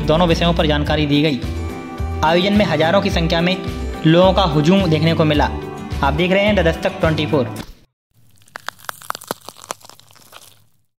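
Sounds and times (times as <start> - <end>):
sharp clicks and crackles: 8.3 - 10.7.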